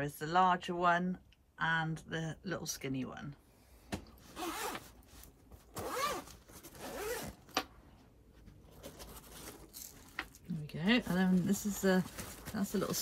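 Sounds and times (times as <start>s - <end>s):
fabric zip being pulled open: 4.3s - 5.0s, 5.7s - 7.5s.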